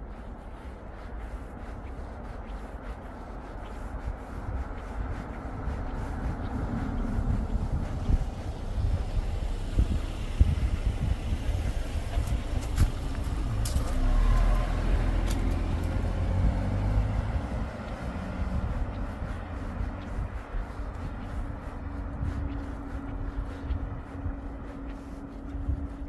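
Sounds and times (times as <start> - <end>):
car engine and tyre rumble: 0.0 - 26.0.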